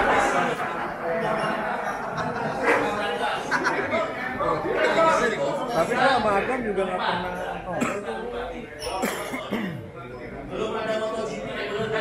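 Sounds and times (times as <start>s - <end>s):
people talking: 0.0s - 12.0s
person coughing: 9.0s - 9.9s.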